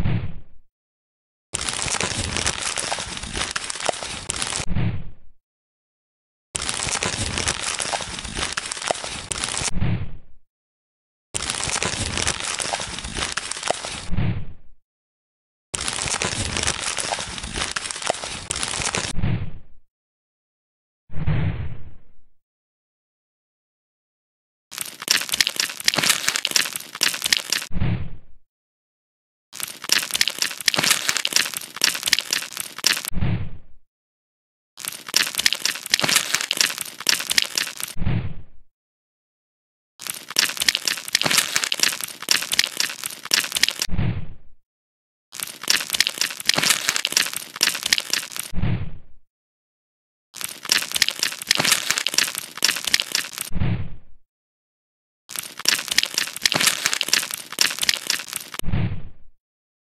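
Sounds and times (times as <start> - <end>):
crunchy scraping crackles: 1.6 - 4.6, 6.6 - 9.7, 11.4 - 14.1, 15.8 - 19.1, 24.7 - 27.7, 29.6 - 33.1, 34.8 - 38.0, 40.0 - 43.9, 45.4 - 48.5, 50.4 - 53.5, 55.3 - 58.6.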